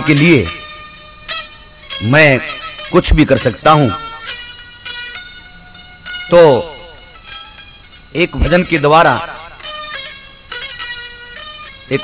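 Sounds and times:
harmonium chord: 0.0 - 12.0.

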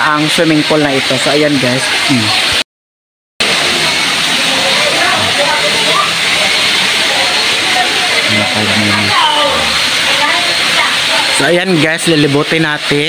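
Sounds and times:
faint voices: 1.8 - 2.6, 3.4 - 13.0
loud steady rushing noise: 3.4 - 13.0.

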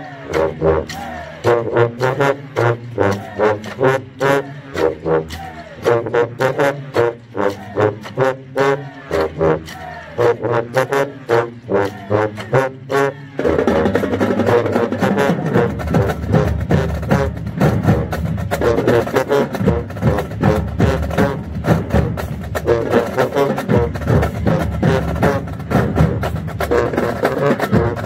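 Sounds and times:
sousaphones playing bass line: 0.0 - 28.0.

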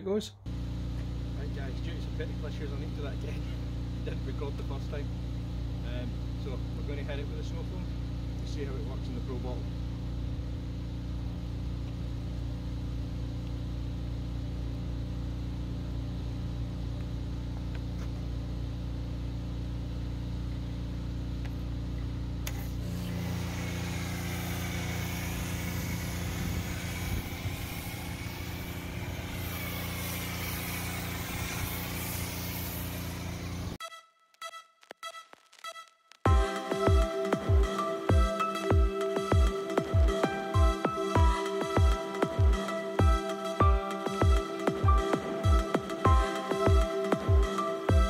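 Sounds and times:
pressure washer humming: 0.5 - 33.8, 36.3 - 48.0
foam spraying hiss: 22.6 - 33.8.

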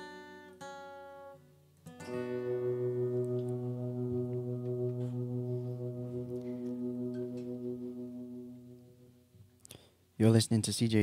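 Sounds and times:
acoustic guitar chord ringing: 1.9 - 9.4.

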